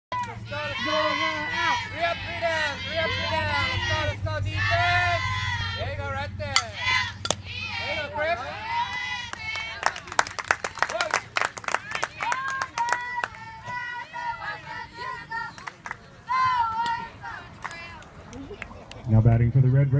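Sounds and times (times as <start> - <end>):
high voices calling and chanting: 0.2 - 10.2
scattered hand claps: 9.3 - 13.8, 15.5 - 16.0.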